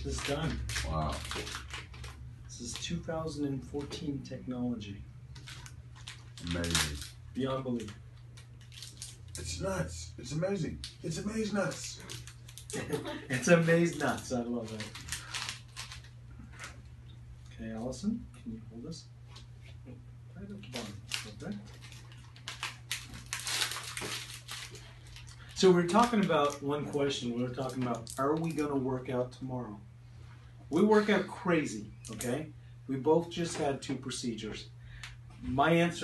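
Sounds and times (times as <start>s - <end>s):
vials and packets clicking: 0.0s - 2.9s, 10.8s - 12.8s, 13.9s - 16.1s, 20.7s - 27.0s, 32.0s - 32.3s
low electrical hum: 0.0s - 36.0s.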